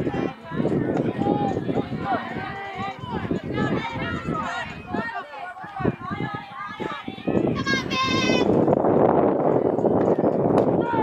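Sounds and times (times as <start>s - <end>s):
players cheering and shouting: 0.0s - 11.0s
girl yelling: 7.6s - 8.5s.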